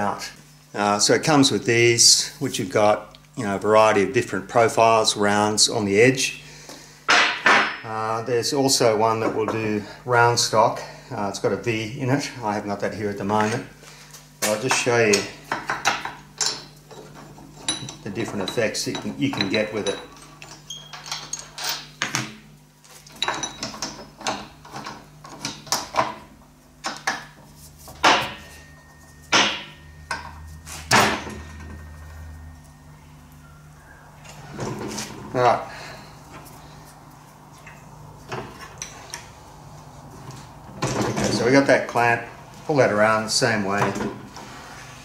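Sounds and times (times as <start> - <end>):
low steady hum: 0.0 - 45.0.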